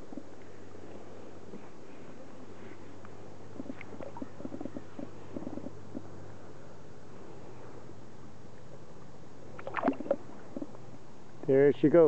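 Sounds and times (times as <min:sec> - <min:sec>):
small water splashes: 0:09.5 - 0:10.7.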